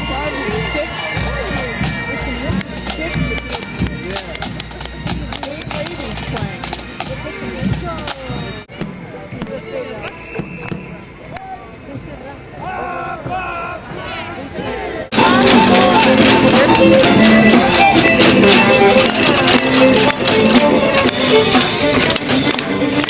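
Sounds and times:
bagpipes playing: 0.0s - 8.7s, 15.1s - 23.0s
drums beating: 0.0s - 14.1s, 15.1s - 23.0s
crowd voices: 0.0s - 23.0s.

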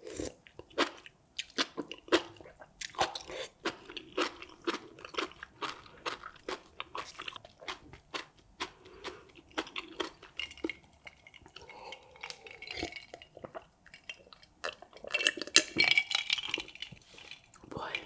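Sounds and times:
chewing noodles: 0.2s - 17.6s.

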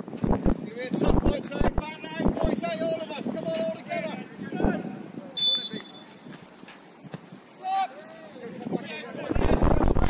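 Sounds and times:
referee's whistle blowing: 5.4s - 6.2s.

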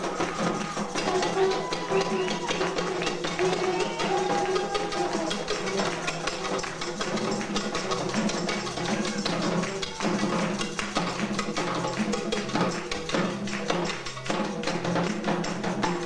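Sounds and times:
hand drums fast beat: 0.0s - 16.0s.

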